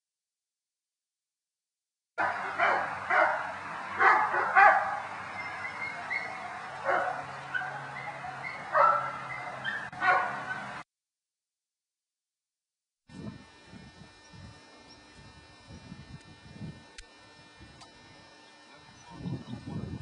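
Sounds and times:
dogs barking and yipping: 2.2 - 10.8.

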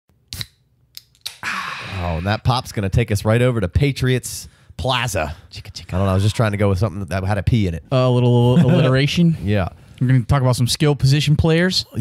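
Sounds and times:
person speaking: 1.4 - 12.0.

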